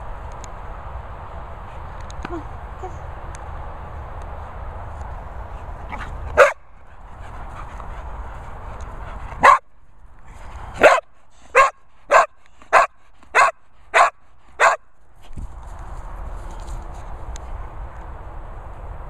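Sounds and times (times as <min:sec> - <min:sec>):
dog barking: 0:05.9 - 0:06.6, 0:09.4 - 0:09.6, 0:10.8 - 0:14.8.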